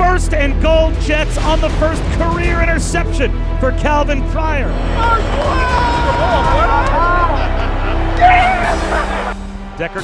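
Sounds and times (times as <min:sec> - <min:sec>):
stadium crowd noise: 0:04.9 - 0:10.0
men shouting and whooping: 0:05.0 - 0:10.0.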